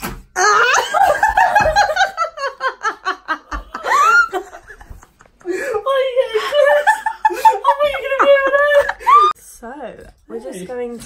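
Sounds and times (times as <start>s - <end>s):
loud hearty laughter: 0.6s - 5.6s.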